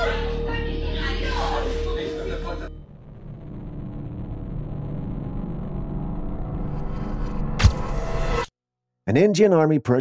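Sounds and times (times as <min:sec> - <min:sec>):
low rumbling drone: 0:00.0 - 0:08.4.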